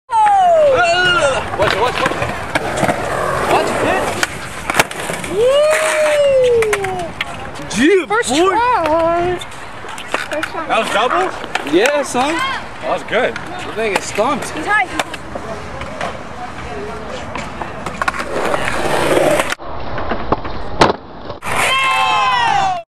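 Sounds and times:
skateboard wheels rolling on concrete: 0.1 - 22.8
skateboard clacks: 0.2 - 12.6, 13.2 - 22.0
sharp crack: 1.6 - 7.3, 17.9 - 21.8.

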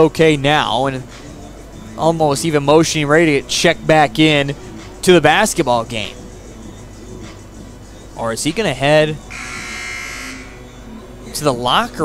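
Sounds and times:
scoreboard horn buzz: 9.3 - 10.7.

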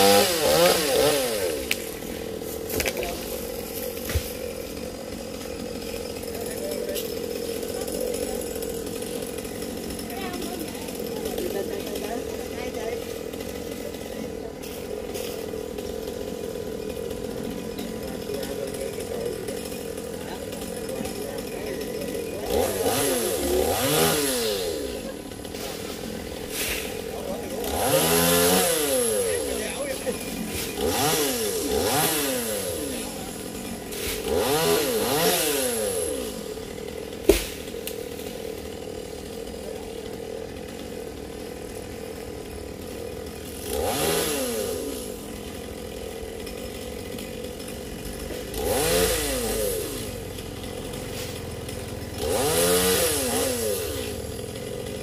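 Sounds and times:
chainsaw idling and revving: 0.0 - 55.0.

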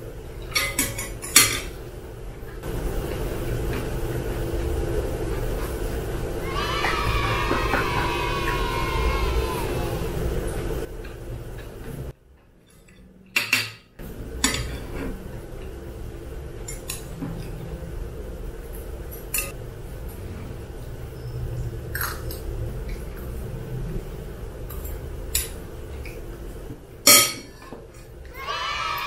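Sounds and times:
steady hum: 0.0 - 29.0
metal utensils clinking on bowl: 12.6 - 15.1, 24.7 - 25.6.

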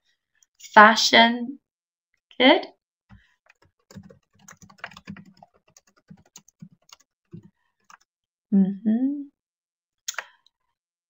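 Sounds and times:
computer keyboard typing: 3.4 - 8.0.

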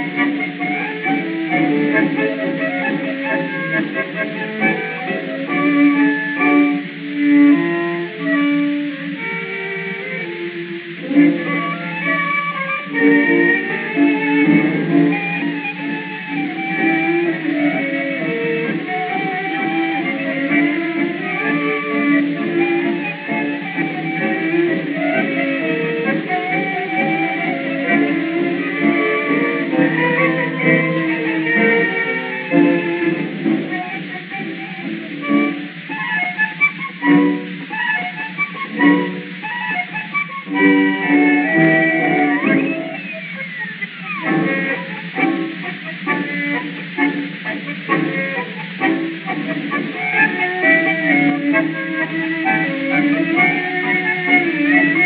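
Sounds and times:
old instrumental tango recording: 0.0 - 55.0.

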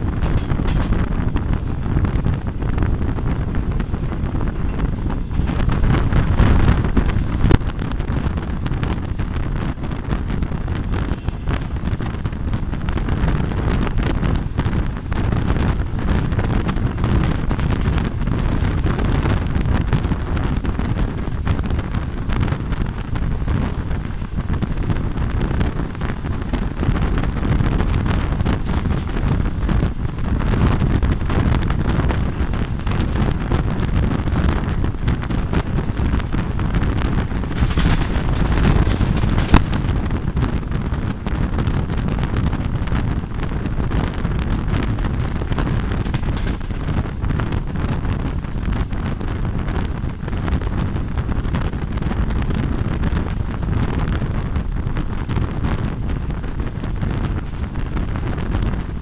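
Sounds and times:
train running on track: 0.0 - 59.0
wind buffeting microphone: 0.0 - 59.0.

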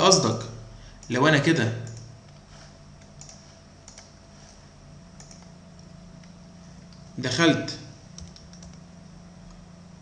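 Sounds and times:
low electrical hum: 0.0 - 10.0
computer keys clicking: 1.8 - 4.2, 5.2 - 7.1, 8.1 - 8.9.

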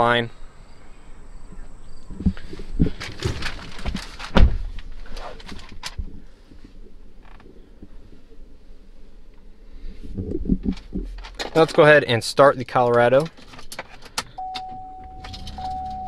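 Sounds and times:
handling sounds: 2.2 - 7.6, 10.5 - 12.0, 12.7 - 16.0.

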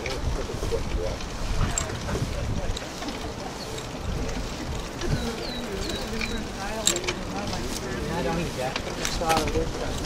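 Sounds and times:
wind on microphone: 0.0 - 6.6
people talking: 0.0 - 10.0
bird chirping: 5.1 - 6.6.

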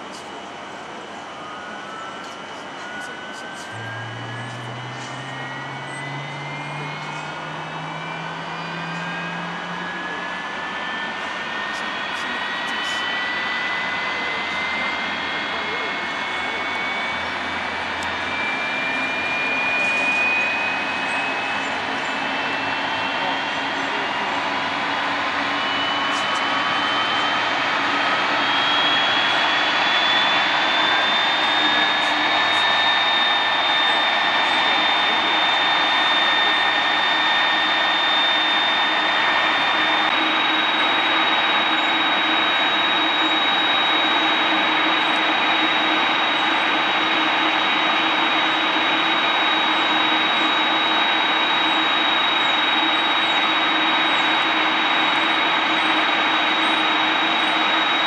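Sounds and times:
jet engine roar: 0.0 - 58.0
jet engine whine rising: 0.0 - 58.0
low hum rising in pitch: 1.3 - 58.0.

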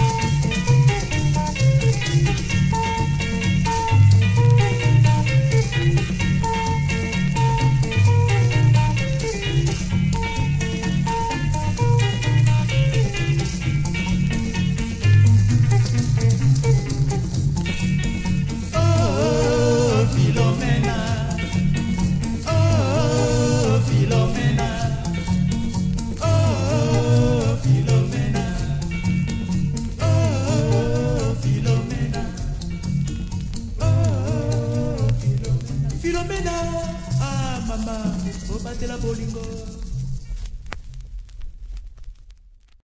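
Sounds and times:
guitars picking melody: 0.0 - 40.2
steady bass line: 0.0 - 40.2
shaker beat: 0.0 - 40.7
vinyl clicks and crackle: 0.0 - 42.8
vinyl surface noise: 0.0 - 42.8.

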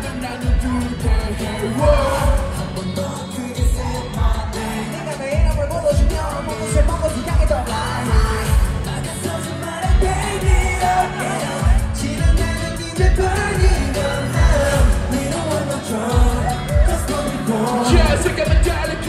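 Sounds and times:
group singing live pop: 0.0 - 19.0
heavy bass drum beat: 0.0 - 19.0.

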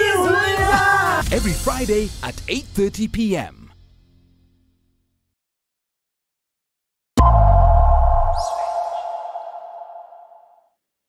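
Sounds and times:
deep boom: 7.2 - 10.4
high swish: 7.2 - 10.5
steady ringing tone: 7.2 - 10.5.

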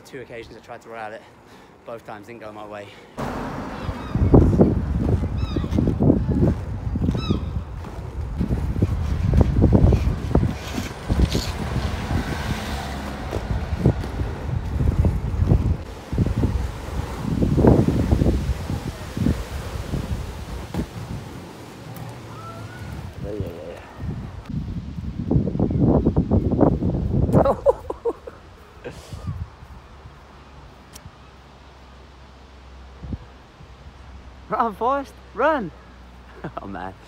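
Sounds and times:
skateboard wheels rolling on asphalt: 3.2 - 27.3.

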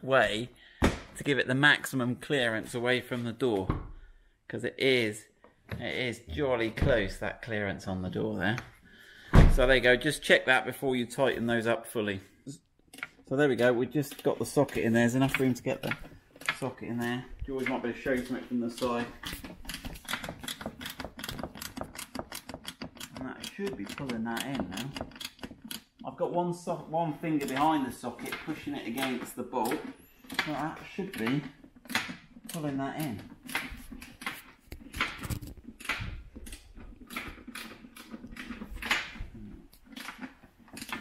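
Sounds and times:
socket ratchet clicking: 19.7 - 26.0.

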